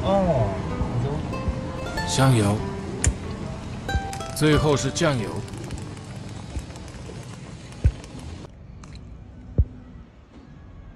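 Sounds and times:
steady background noise: 0.0s - 10.9s.

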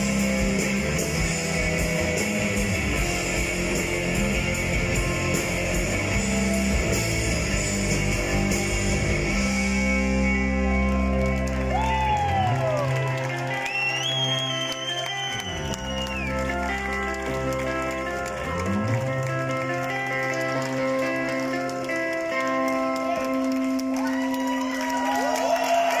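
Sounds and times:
rock band playing: 0.0s - 25.9s.

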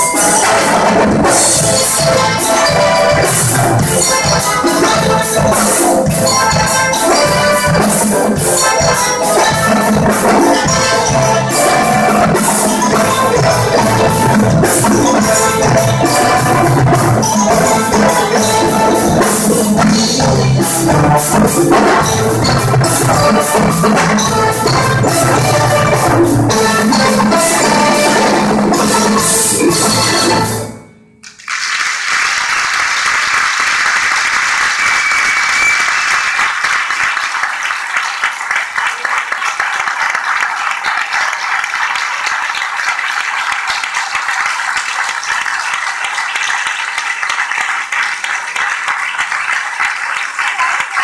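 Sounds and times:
percussion ensemble with brass: 0.0s - 51.0s
audience applause: 31.2s - 51.0s.

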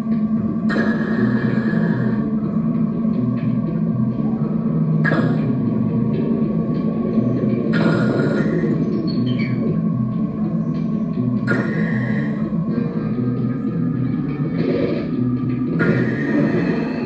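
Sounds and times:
experimental drone music: 0.0s - 17.0s
noisy hissing swells: 0.0s - 17.0s.

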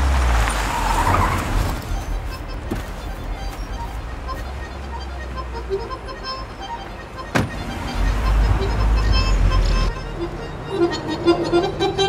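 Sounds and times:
car door slamming: 7.3s - 7.8s.

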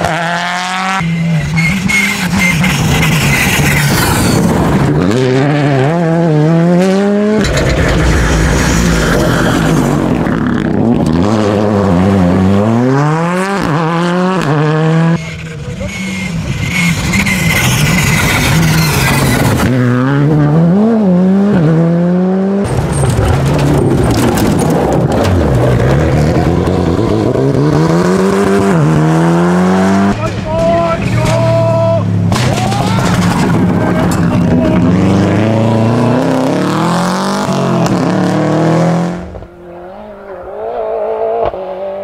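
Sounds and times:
engines revving through gear changes: 0.0s - 7.7s, 8.6s - 30.3s, 31.0s - 42.0s
rally cars passing at speed: 0.0s - 42.0s.

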